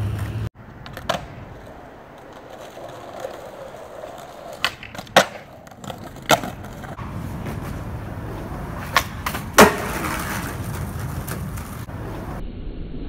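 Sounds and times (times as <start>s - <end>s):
skateboard wheels rolling on concrete: 0.0s - 12.4s
skateboard tail pop: 0.1s - 1.4s, 4.5s - 6.8s, 8.8s - 11.8s
skateboard landing clack: 0.1s - 7.9s, 8.7s - 11.9s.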